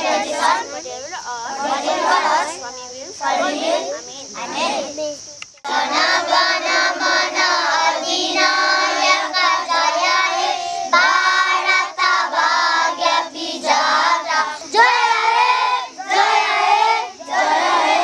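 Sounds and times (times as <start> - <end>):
children singing in unison: 0.0 - 5.0, 5.6 - 18.0.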